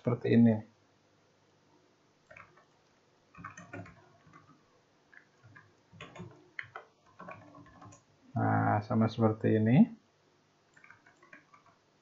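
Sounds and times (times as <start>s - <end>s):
keyboard key clicks: 3.4s - 4.5s, 5.2s - 8.0s.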